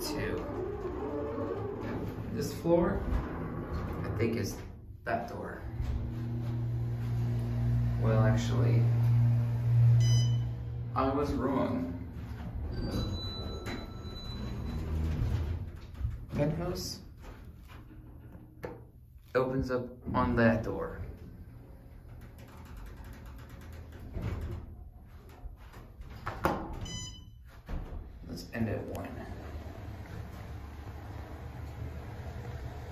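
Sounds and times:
elevator doors sliding shut: 0.0 - 16.6, 29.0 - 32.9
elevator pump motor humming: 5.6 - 11.2, 29.0 - 32.9.

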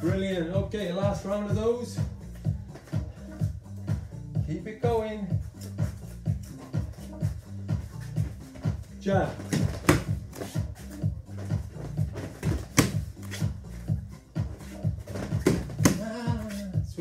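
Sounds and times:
person saying ah: 16.0 - 16.8.

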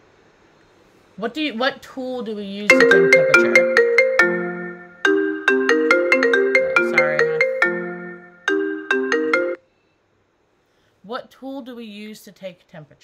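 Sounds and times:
marimba-like phone ringtone: 2.7 - 9.6.

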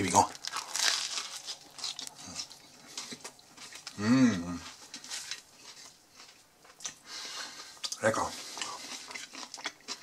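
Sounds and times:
chewing with wet mouth clicks: 5.3 - 7.0, 8.6 - 10.0.

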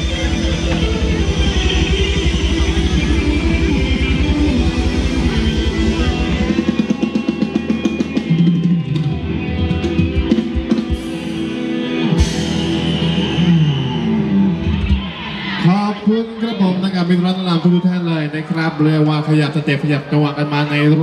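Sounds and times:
live band dance music: 0.0 - 17.8.

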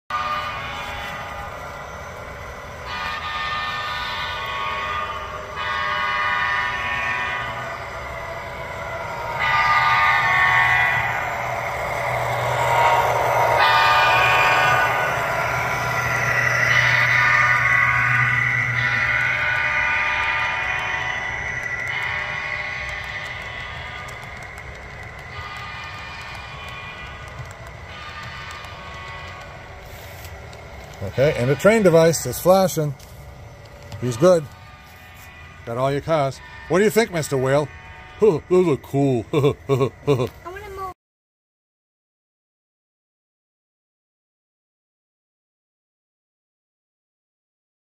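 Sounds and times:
model locomotive horn blasts: 0.1 - 1.7, 2.8 - 8.7, 9.3 - 33.0, 33.9 - 38.9
low steady engine hum: 0.1 - 41.0.

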